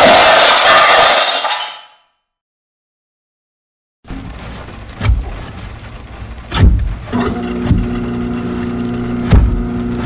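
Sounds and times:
steady machine hum: 4.1s - 10.0s
heavy low thuds: 6.5s - 7.1s.

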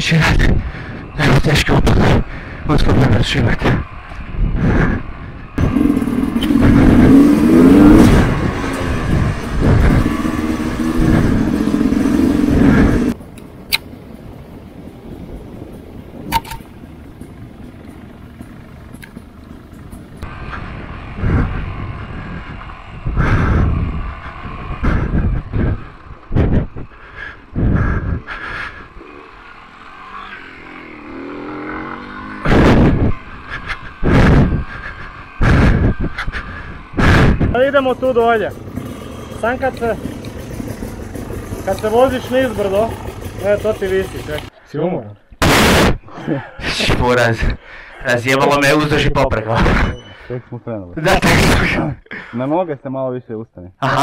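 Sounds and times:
motorcycle engine revving: 0.0s - 13.2s, 16.2s - 44.5s.

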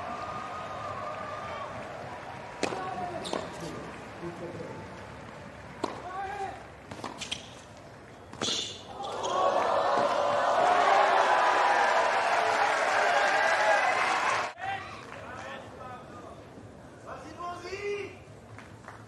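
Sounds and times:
crowd cheering and applause: 0.0s - 3.2s, 9.0s - 15.2s
tennis racquet strikes: 2.6s - 3.8s, 5.8s - 7.7s, 8.3s - 8.9s
tennis ball bounces: 2.6s - 4.0s, 5.6s - 7.7s.

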